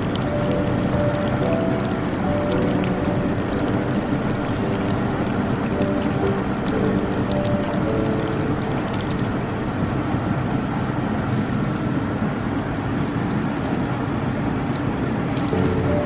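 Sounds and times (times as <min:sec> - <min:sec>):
crackle of bursting bubbles: 0:00.0 - 0:09.4, 0:14.7 - 0:16.0
bubbling churning water: 0:00.0 - 0:16.0
pump humming: 0:00.0 - 0:16.0.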